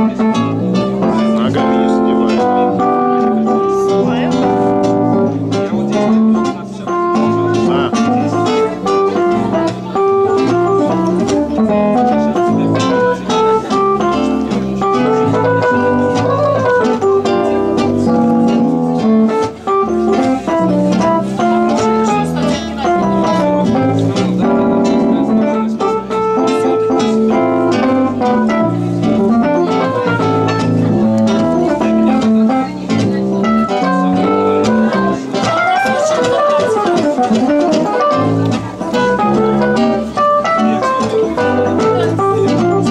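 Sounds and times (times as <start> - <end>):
acoustic guitar: 0.0 - 42.9
organ-like electric keyboard: 0.0 - 42.9.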